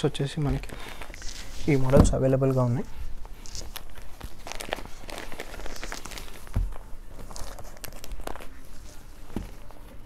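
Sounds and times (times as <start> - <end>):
cloth rustling: 0.3 - 10.0.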